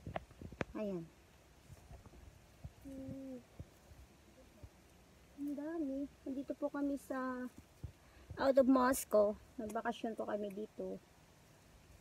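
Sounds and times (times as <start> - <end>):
woman humming: 2.8 - 3.5, 5.4 - 6.4.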